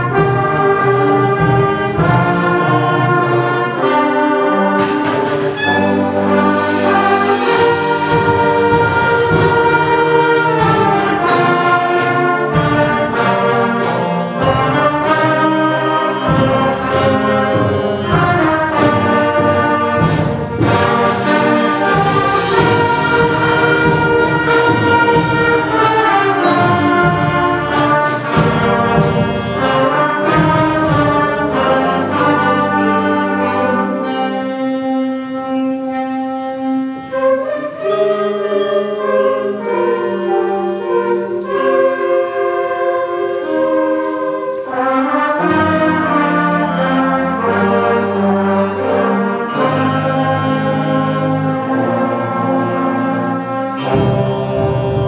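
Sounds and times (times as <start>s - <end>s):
concert band playing: 0.0s - 55.0s.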